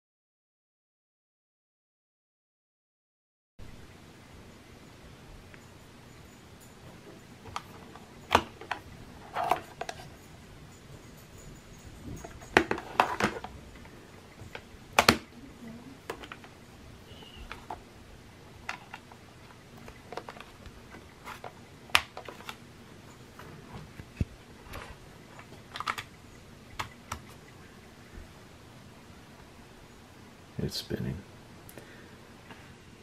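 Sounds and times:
hard drive and cable handling clicks: 0:16.0 - 0:16.6, 0:18.6 - 0:22.6, 0:23.9 - 0:26.2.

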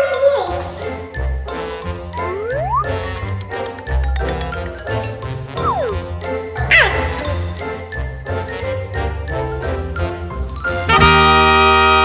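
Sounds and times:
falling pitch glide: 0:02.2 - 0:03.0, 0:05.6 - 0:06.0
tinkling bell-like melody: 0:02.9 - 0:08.2.

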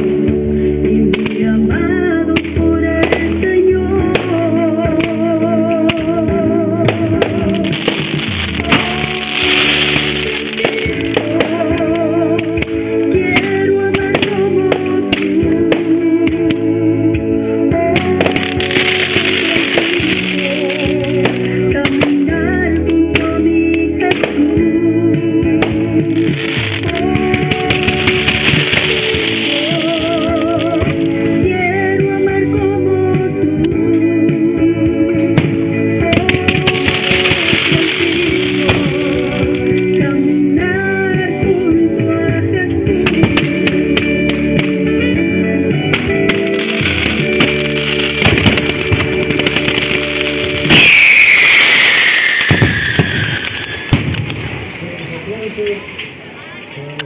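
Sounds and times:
song: 0:00.0 - 0:54.8
music playing: 0:00.0 - 0:56.6
fireworks cracks and pops: 0:02.3 - 0:16.8, 0:17.9 - 0:24.6, 0:25.5 - 0:31.7, 0:35.5 - 0:42.1, 0:42.9 - 0:45.1, 0:45.7 - 0:57.0
spark fountains crackling hiss: 0:07.2 - 0:16.0, 0:18.0 - 0:22.9, 0:25.8 - 0:31.4, 0:36.2 - 0:40.3, 0:46.0 - 0:54.6
falling firework whistle: 0:50.3 - 0:54.2.

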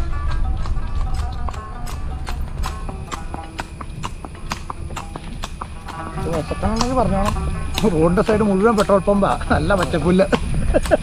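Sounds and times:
horse hooves clip-clopping on road: 0:00.0 - 0:11.0.

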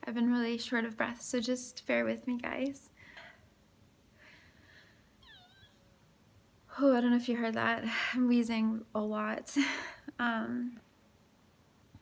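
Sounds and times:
woman speaking: 0:00.0 - 0:02.9, 0:06.7 - 0:10.8.

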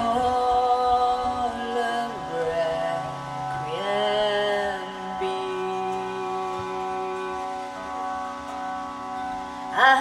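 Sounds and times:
woman singing: 0:00.0 - 0:08.0, 0:09.7 - 0:10.0
harmonium and tanpura drone: 0:00.0 - 0:10.0.

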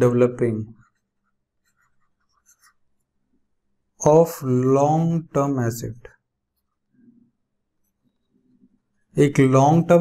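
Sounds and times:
stylus scratching on a tablet: 0:00.7 - 0:03.2.

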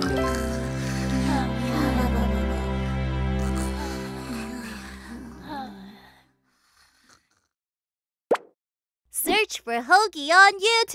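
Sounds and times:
cartoon pop: 0:08.3 - 0:08.6.

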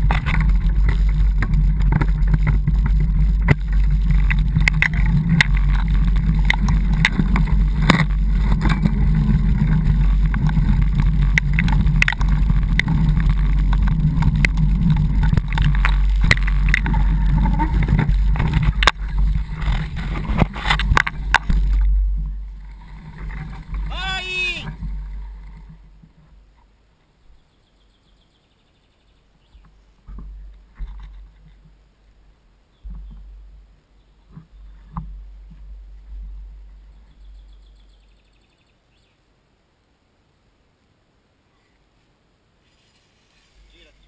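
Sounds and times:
vehicle rumbling on dirt trail: 0:00.0 - 0:39.1
high-pitched voice-like call: 0:23.9 - 0:24.7.

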